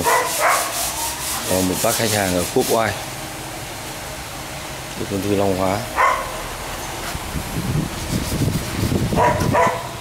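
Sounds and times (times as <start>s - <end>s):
workshop background hiss: 0.0s - 10.0s.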